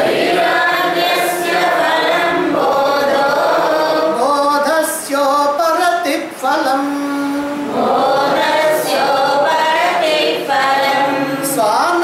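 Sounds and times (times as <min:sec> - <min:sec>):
voices singing slow chant: 0:00.0 - 0:05.5, 0:06.7 - 0:12.0.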